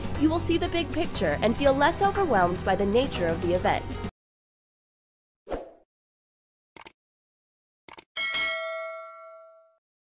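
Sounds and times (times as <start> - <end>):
notification bell ding: 8.2 - 9.8.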